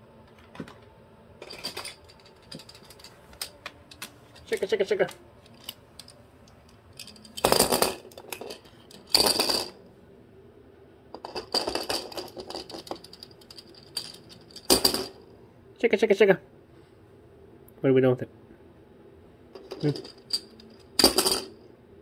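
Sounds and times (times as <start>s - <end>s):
plastic rattle toy clattering on floor: 1.4s - 4.7s, 6.9s - 9.8s, 11.2s - 15.2s, 19.6s - 21.5s.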